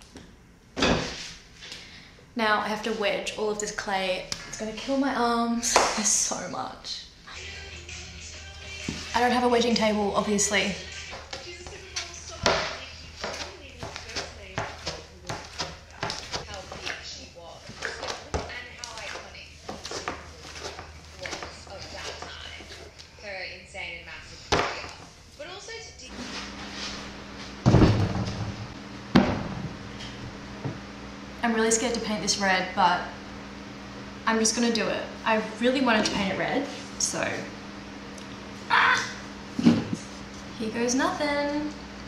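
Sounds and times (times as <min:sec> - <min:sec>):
steady low hum: 0:00.0 - 0:42.0
heavy wooden knocks and thuds: 0:27.7 - 0:29.7.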